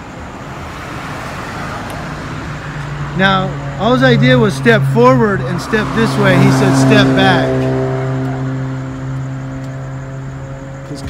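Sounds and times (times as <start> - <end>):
vehicle engine idling: 2.4 - 11.0.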